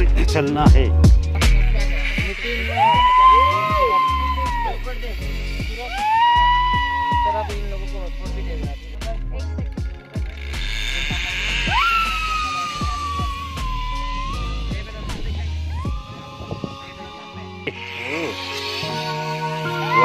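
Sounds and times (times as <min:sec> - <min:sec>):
hip hop music with heavy bass: 0:00.0 - 0:20.0.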